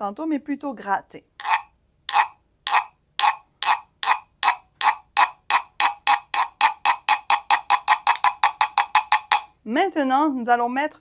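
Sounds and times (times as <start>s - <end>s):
guiro scraped with a stick: 1.4s - 9.5s.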